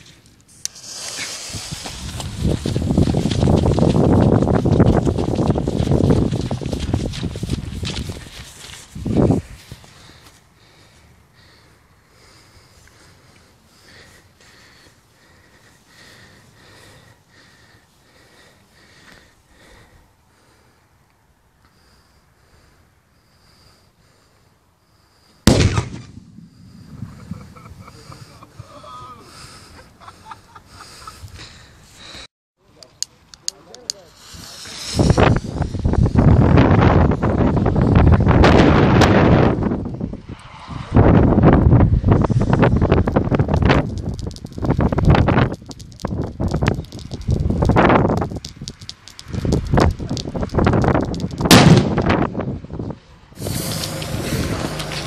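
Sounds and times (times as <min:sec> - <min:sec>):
firecracker fuse hissing: 0:00.5 - 0:03.0, 0:33.8 - 0:36.4, 0:43.5 - 0:52.1, 0:53.4 - 0:55.0
wind buffeting microphone: 0:01.4 - 0:09.9, 0:25.5 - 0:28.7, 0:34.3 - 0:55.0
firecracker bang: 0:25.5 - 0:28.1, 0:51.4 - 0:52.3.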